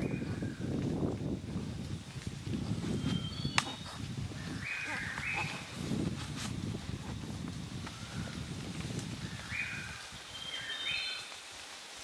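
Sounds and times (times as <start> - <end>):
bird whistling call: 3.0 - 3.8.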